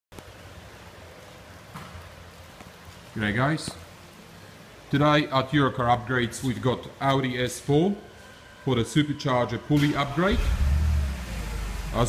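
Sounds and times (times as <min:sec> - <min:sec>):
low hum: 0:07.6 - 0:12.0.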